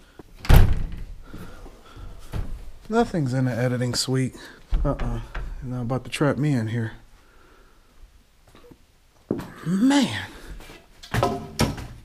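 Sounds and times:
door banging open: 0.4 - 1.2, 11.1 - 12.0.

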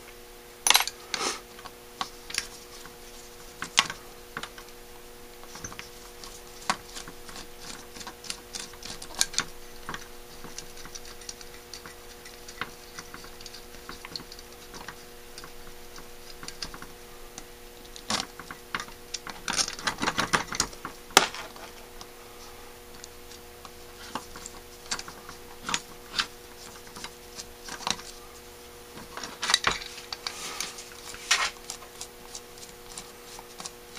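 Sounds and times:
faint steady hum: 0.0 - 33.9.

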